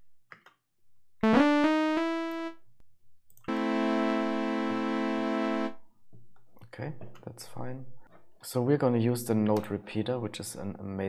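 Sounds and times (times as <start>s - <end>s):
synthesizer chords: 1.2s - 2.8s, 3.4s - 5.8s.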